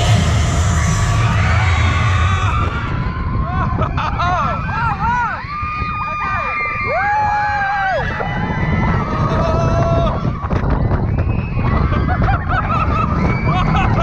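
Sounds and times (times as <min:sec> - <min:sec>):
roller coaster train rumble: 0:00.0 - 0:14.0
wind on microphone: 0:00.0 - 0:14.0.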